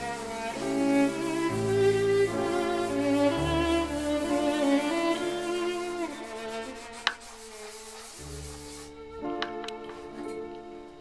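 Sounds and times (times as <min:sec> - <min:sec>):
violin and cello slow notes: 0:00.0 - 0:11.0.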